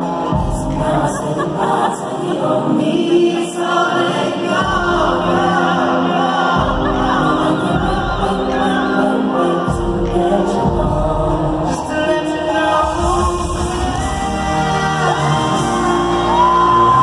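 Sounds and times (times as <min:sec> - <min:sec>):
choir-like vocals over chords: 0:00.0 - 0:17.0.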